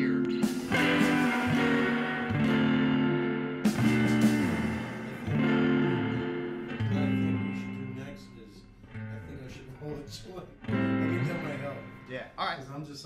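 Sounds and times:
guitar chords ringing: 0.0s - 13.0s.

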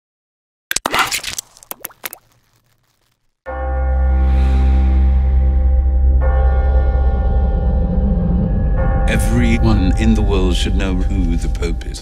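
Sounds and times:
deep sustained drone tone: 4.0s - 12.0s.

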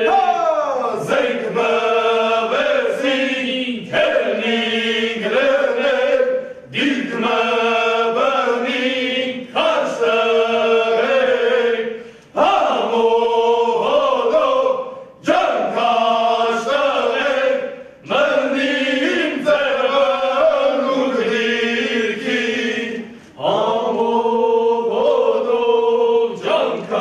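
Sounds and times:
men singing together: 0.0s - 27.0s.

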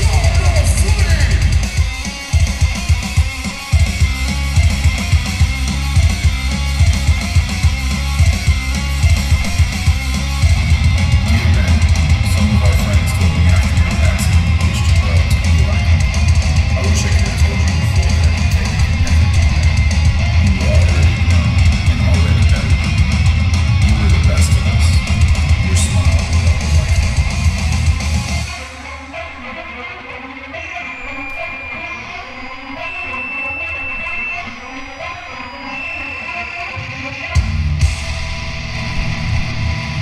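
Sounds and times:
hardcore band playing: 0.0s - 40.0s.

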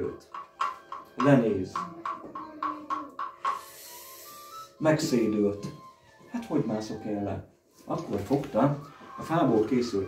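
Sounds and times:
soft breathy hiss: 3.2s - 5.3s.

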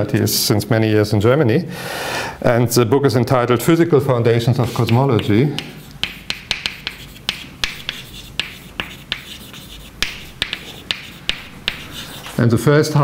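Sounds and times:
chalk tapping on blackboard: 4.6s - 12.4s
chalk scratching: 4.6s - 12.6s.

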